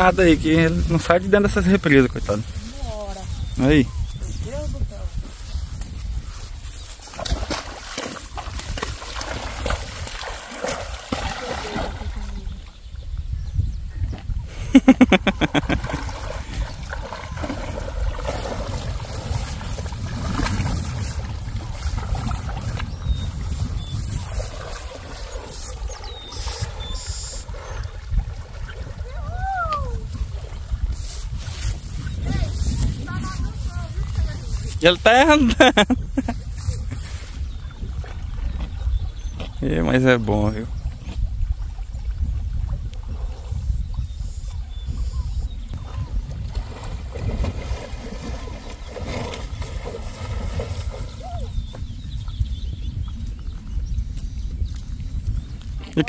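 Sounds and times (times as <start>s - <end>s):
water splashing and sloshing: 0.0s - 13.3s, 14.0s - 56.0s
horse wading through water: 0.0s - 56.0s.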